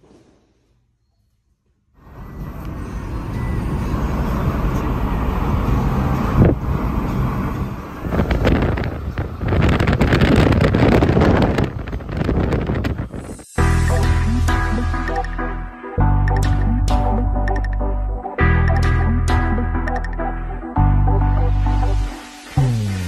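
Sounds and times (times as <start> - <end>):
road and wind noise from car: 2.0 - 13.6.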